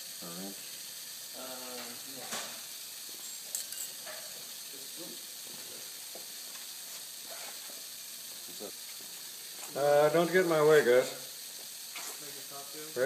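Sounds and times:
pressurised air hissing: 0:00.0 - 0:13.0.

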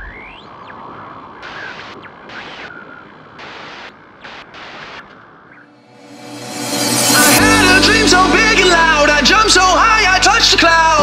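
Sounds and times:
static-like hiss: 0:00.6 - 0:05.6
rising whoosh: 0:05.7 - 0:10.1.

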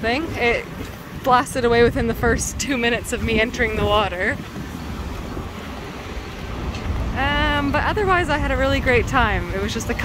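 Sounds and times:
passing street traffic: 0:00.0 - 0:10.0
wind rumbling on microphone: 0:00.0 - 0:10.0.

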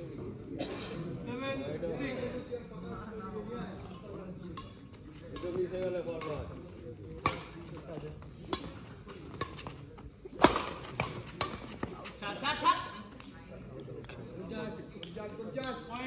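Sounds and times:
rackets striking shuttlecock: 0:04.5 - 0:12.0.

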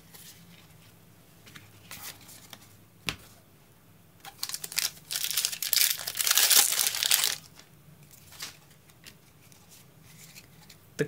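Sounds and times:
foil wrapper crinkling and tearing: 0:04.3 - 0:07.6.

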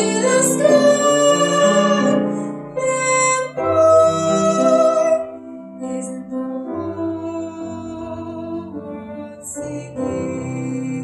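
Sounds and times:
piano accompaniment: 0:00.0 - 0:11.0
women singing a duet: 0:00.0 - 0:11.0.

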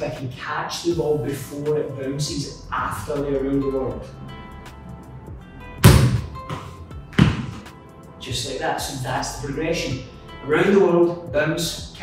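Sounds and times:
background music: 0:00.0 - 0:12.0
ball thudding on tiled floor: 0:05.8 - 0:07.6.

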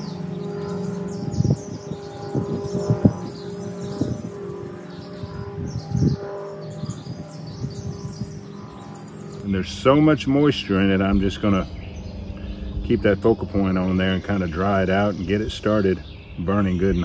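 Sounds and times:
small birds chirping: 0:00.0 - 0:17.0
steady low hum: 0:00.0 - 0:17.0.

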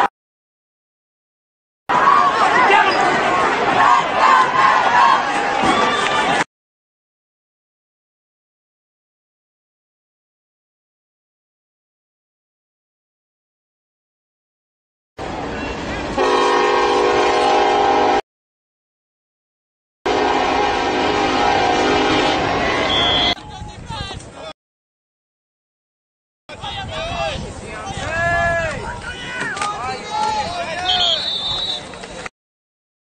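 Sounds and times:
people shouting: 0:01.9 - 0:06.4
loud horn blast: 0:16.2 - 0:18.2, 0:20.1 - 0:23.4
referee's whistle blowing: 0:22.8 - 0:23.4, 0:30.8 - 0:31.9
outdoor background noise: 0:26.5 - 0:32.3.

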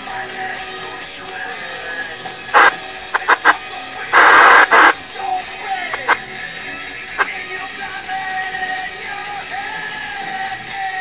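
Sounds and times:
music over radio: 0:00.0 - 0:11.0
radio static bursts: 0:02.5 - 0:05.0, 0:05.8 - 0:06.2.

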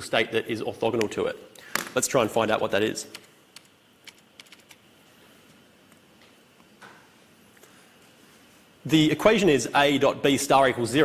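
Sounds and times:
keyboard keys clicking: 0:03.1 - 0:04.8.

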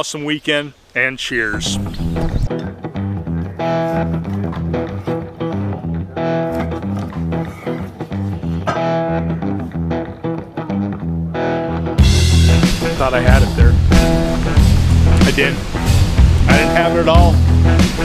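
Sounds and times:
bass guitar: 0:01.5 - 0:18.0
plucked guitar: 0:01.7 - 0:18.0.

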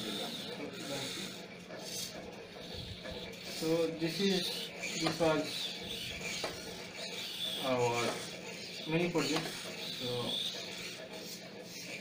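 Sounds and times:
servo motors whirring: 0:00.0 - 0:12.0.

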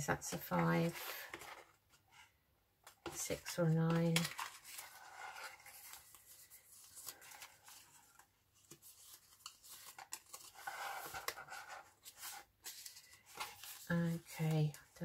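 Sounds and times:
paper labels rustling: 0:03.0 - 0:15.0.

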